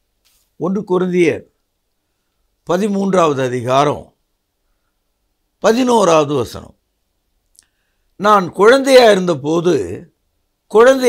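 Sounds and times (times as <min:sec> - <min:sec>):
man speaking: 0:00.6 - 0:01.6, 0:02.7 - 0:04.2, 0:05.6 - 0:06.8, 0:08.2 - 0:10.1, 0:10.7 - 0:11.0.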